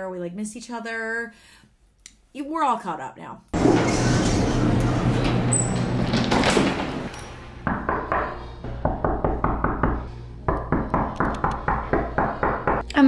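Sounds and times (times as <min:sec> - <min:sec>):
knocking on door: 0:07.6 - 0:12.8.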